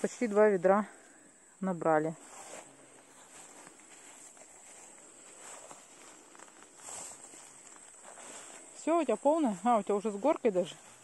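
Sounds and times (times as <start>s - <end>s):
grasshoppers chirring: 2.0s - 11.0s
footsteps swishing through grass: 2.2s - 9.8s, 10.5s - 11.0s.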